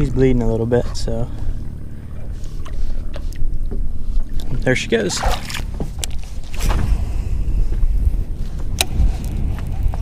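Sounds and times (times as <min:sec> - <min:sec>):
steady low rumble: 0:00.0 - 0:10.0
water splashing and lapping: 0:00.0 - 0:10.0.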